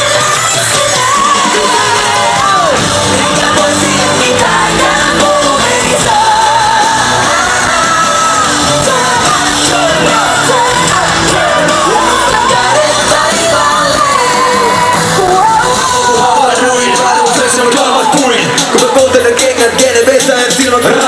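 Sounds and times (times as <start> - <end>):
fans shouting along: 0.0 - 21.0
live pop music over a pa: 0.0 - 21.0
person singing: 0.0 - 21.0.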